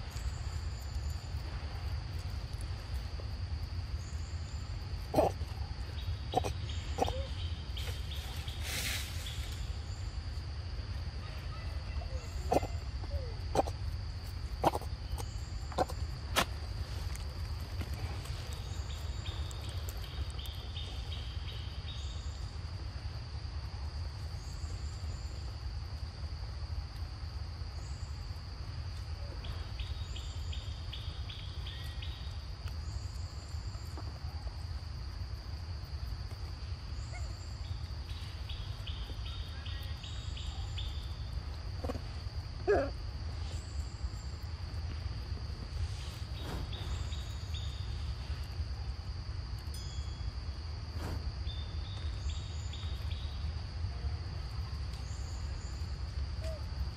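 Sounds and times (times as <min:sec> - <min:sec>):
insect rapid trilling: 0:00.0 - 0:22.6, 0:29.4 - 0:53.8
insect high-pitched drone: 0:02.8 - 0:23.6, 0:27.5 - 0:56.9
faint high chirps: 0:49.7 - 0:50.3.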